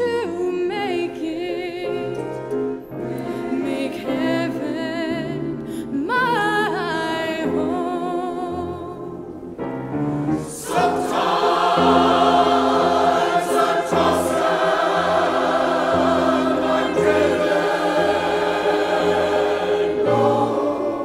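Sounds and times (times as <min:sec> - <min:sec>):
church choir singing in harmony: 0:02.9 - 0:05.4, 0:10.1 - 0:21.0.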